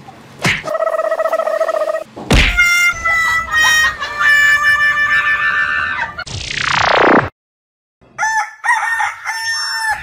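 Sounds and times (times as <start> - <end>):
rooster crow sound effect: 8.2 - 10.0.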